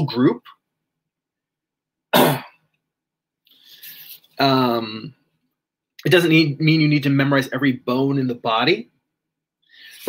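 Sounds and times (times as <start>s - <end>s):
man coughing: 2.1s - 2.6s.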